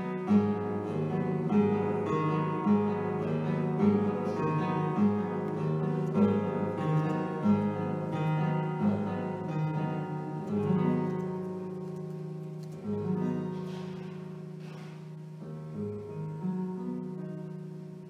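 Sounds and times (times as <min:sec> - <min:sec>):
solo classical guitar: 0:00.0 - 0:18.0.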